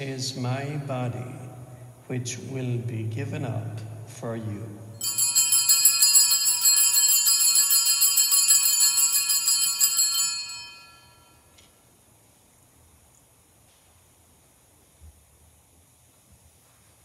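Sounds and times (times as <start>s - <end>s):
small bells jingling: 5.0s - 11.4s.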